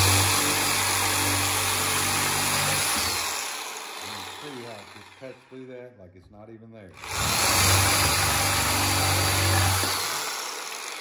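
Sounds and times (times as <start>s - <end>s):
reciprocating saw cutting wood: 0.0s - 5.5s, 7.0s - 11.0s.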